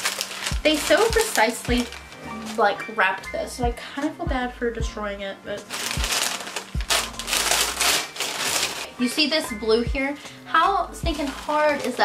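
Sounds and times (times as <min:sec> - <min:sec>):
paper crinkling and tearing: 0:00.0 - 0:02.7, 0:05.6 - 0:08.9, 0:11.1 - 0:12.0.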